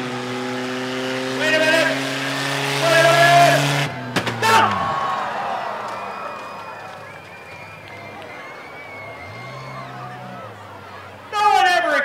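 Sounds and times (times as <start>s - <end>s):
car engine: 0.0s - 12.0s
crowd noise: 0.0s - 12.0s
car crash impact cracks: 4.1s - 4.9s.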